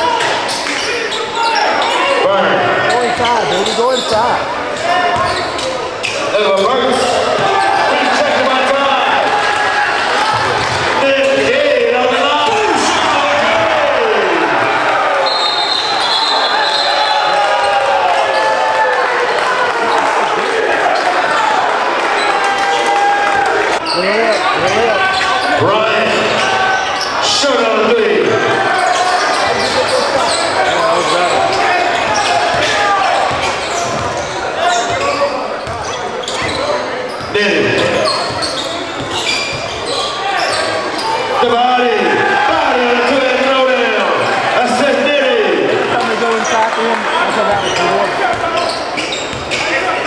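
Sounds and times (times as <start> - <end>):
players and crowd shouting: 0.0 - 50.0
sneakers squeaking: 0.2 - 8.2, 14.6 - 18.6, 23.7 - 27.4, 28.2 - 41.5, 45.9 - 50.0
basketball bouncing on court: 31.0 - 39.8, 47.4 - 49.6.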